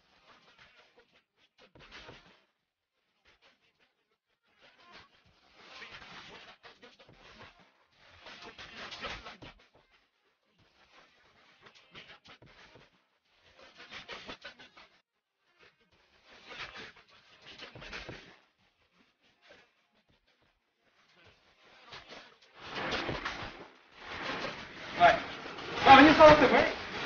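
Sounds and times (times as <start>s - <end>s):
person speaking: 24.8s - 27.0s.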